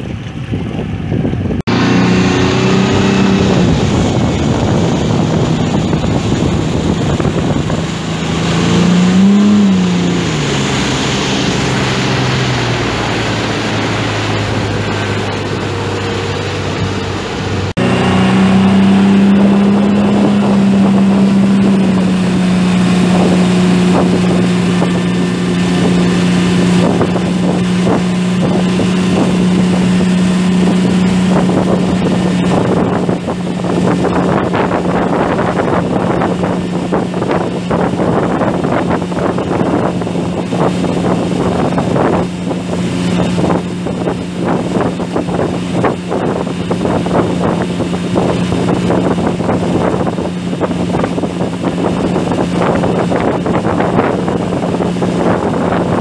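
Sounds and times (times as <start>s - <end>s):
motorboat engine: 0.0s - 56.0s
water rushing from wake: 0.0s - 56.0s
wind on microphone: 0.0s - 56.0s.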